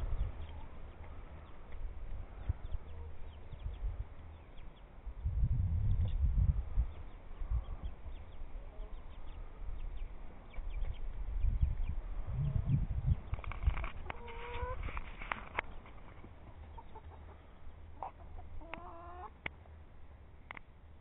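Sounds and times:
chickens clucking: 0.0 - 4.9, 6.8 - 19.8.

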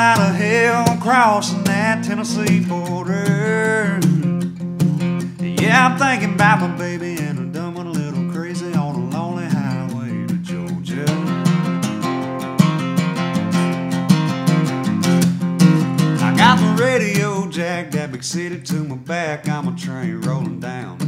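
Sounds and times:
person singing: 0.0 - 4.4, 5.2 - 11.9, 13.1 - 13.9, 16.2 - 21.0
acoustic guitar strumming: 0.0 - 21.0.

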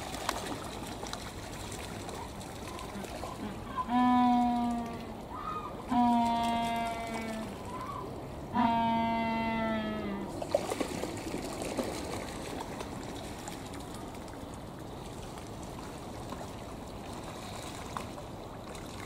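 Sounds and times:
penguin splashing in water: 0.0 - 3.5, 10.4 - 14.4.

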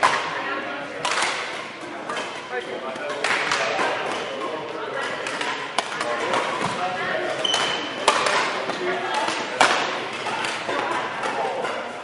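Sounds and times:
rackets hitting shuttlecock: 0.0 - 0.4, 1.0 - 12.0
shoe squeak: 7.4 - 8.0.

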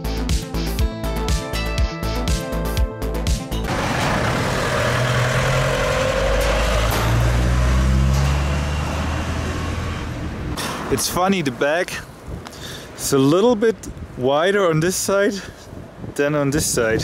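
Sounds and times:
background music: 0.0 - 8.0
truck passing: 3.6 - 11.9
falling whine: 3.7 - 10.5.

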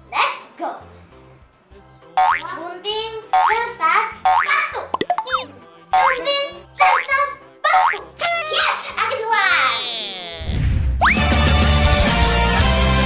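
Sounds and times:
bouncy children's music: 1.9 - 10.2
cartoon boing sound effect: 2.2 - 2.5, 4.3 - 5.5, 7.8 - 8.1.

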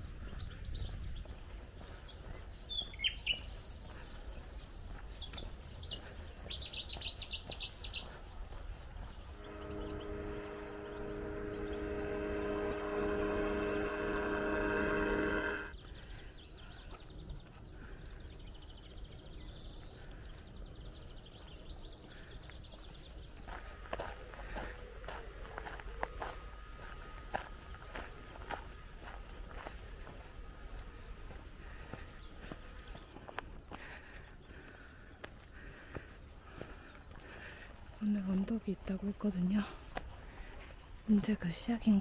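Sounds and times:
small birds chirping: 0.0 - 13.6, 15.8 - 42.0
engine drone: 9.3 - 15.8, 23.6 - 32.8.

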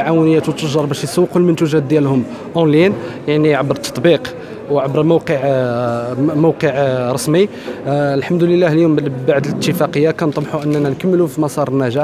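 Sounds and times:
man talking: 4.8 - 12.0.

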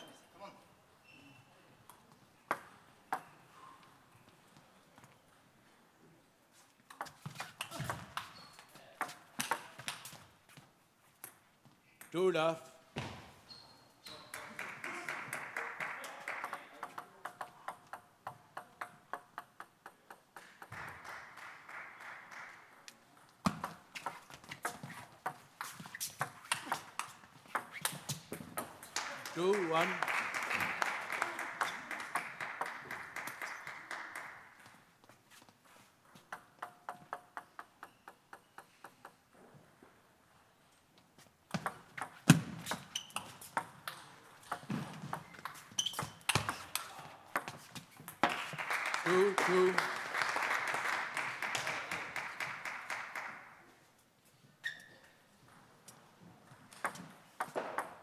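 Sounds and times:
table tennis ball clicking: 36.3 - 39.2.

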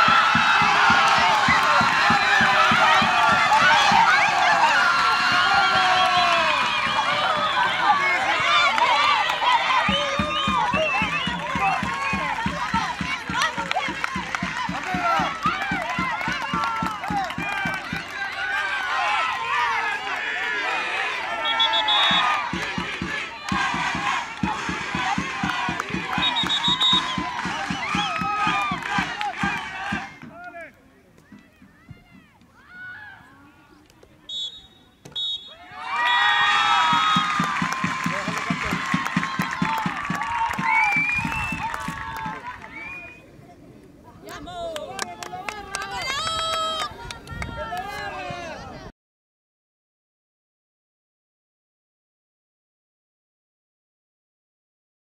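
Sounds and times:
rhythmic clapping: 0.0 - 5.2, 6.3 - 18.4, 22.4 - 30.5, 36.8 - 42.8
women shouting and cheering: 0.0 - 20.0, 44.3 - 48.9
referee's whistle blast: 21.4 - 22.4, 26.1 - 27.3, 34.3 - 36.2.

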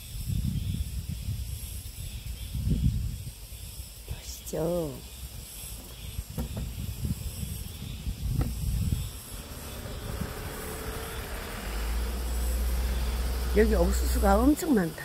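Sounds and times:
low rumble on microphone: 0.0 - 14.8
faint high insect buzz: 0.0 - 15.0
small truck engine and tyres: 5.0 - 15.0
faint knocks: 5.8 - 6.8.

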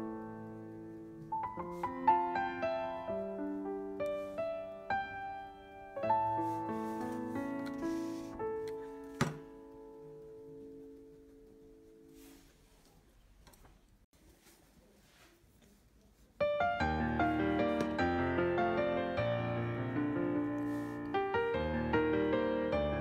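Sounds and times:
solo piano music: 0.0 - 12.5, 16.4 - 23.0.

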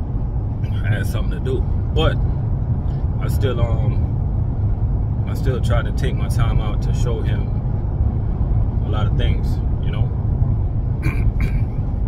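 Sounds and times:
vehicle rumble inside cabin: 0.0 - 12.0.

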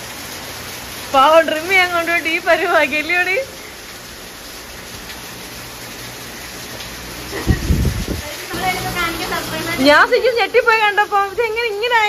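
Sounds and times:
rain falling on wet paving: 0.0 - 12.0.

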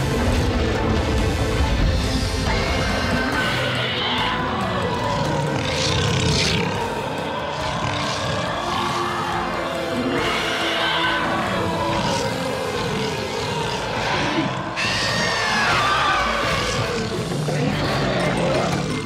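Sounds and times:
tense orchestral score: 0.0 - 19.0
dinosaur growling and screeching: 2.4 - 19.0.

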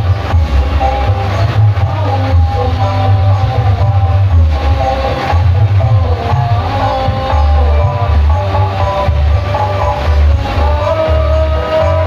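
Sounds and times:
loud music with heavy bass: 0.0 - 12.0.

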